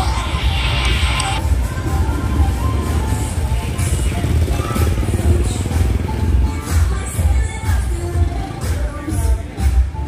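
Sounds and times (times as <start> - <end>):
bass-heavy music from bars: 0.0 - 10.0
motorbike and car traffic: 0.0 - 10.0.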